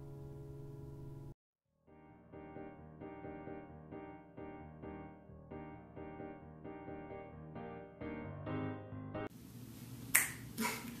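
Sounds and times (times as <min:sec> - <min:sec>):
piano backing track: 0:00.0 - 0:09.3
room hiss: 0:09.3 - 0:11.0.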